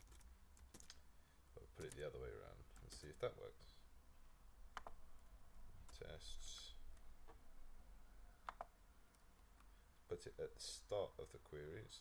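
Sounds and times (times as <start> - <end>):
computer mouse clicks: 4.7 - 5.0, 8.4 - 9.7.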